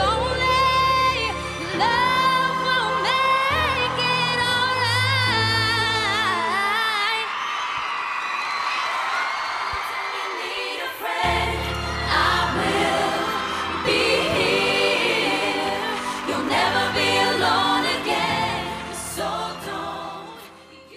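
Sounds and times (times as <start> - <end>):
women singing in harmony: 0.0 - 6.8, 10.0 - 20.9
pop backing track: 11.2 - 20.6.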